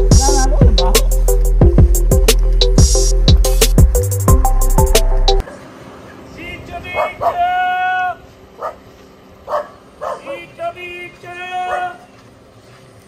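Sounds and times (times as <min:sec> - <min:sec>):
dog barking and yelping: 0:06.9 - 0:07.5, 0:08.6 - 0:08.8, 0:09.4 - 0:10.5.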